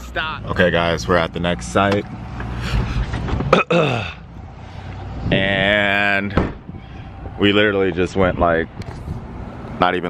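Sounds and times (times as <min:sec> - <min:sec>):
man clearing his throat: 0:03.5 - 0:04.2.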